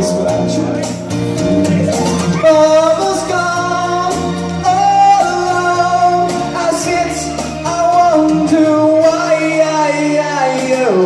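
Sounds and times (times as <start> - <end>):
man singing into a microphone: 0.0 - 1.1, 2.1 - 11.0
backing track with bass and drums: 0.0 - 11.0.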